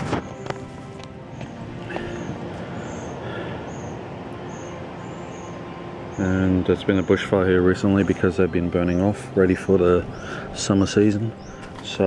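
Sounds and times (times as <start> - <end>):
footsteps crunching through dry leaves: 0.0 - 2.8, 10.1 - 12.0.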